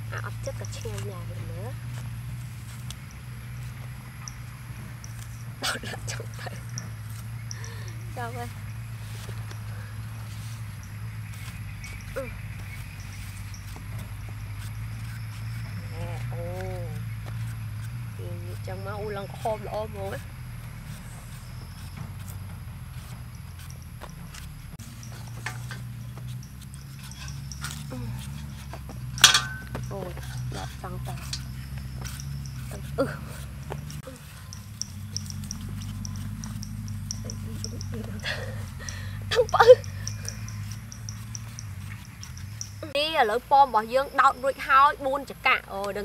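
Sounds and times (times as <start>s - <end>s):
knives peeling apples: 0.0s - 43.0s
steady low hum: 0.0s - 45.4s
person speaking: 37.2s - 40.2s.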